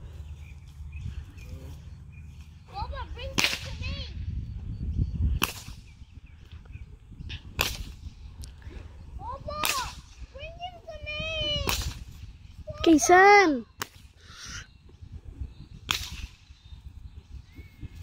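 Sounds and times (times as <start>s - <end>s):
bullwhip cracking: 3.3s - 3.8s, 5.4s - 5.9s, 7.5s - 8.1s, 9.6s - 10.2s, 11.6s - 12.2s, 13.8s - 14.1s, 15.8s - 16.5s.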